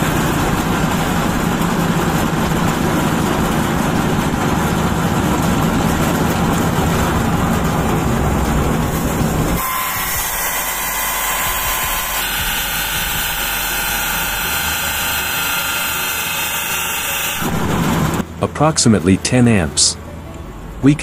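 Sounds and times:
low hum of spinning machinery: 0.0s - 21.0s.

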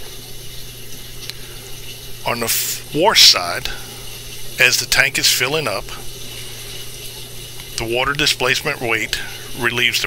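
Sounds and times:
dish machine humming: 0.0s - 10.0s
running water hiss: 0.0s - 10.0s.

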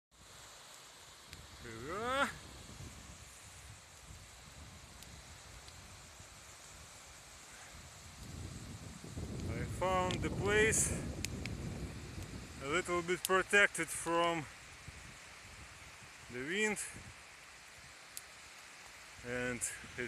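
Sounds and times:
small waves washing onto shore: 0.2s - 20.0s
wind buffeting microphone: 1.4s - 7.0s, 7.6s - 13.0s.

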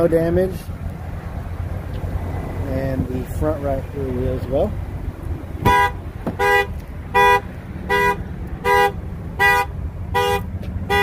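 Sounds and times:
car horn short honks: 5.6s - 11.0s.

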